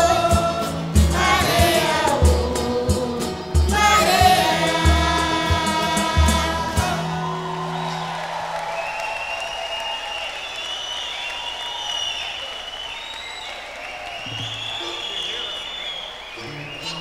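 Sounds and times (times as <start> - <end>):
high cheering shouts: 3.8 - 17.0
audience applauding: 6.8 - 17.0.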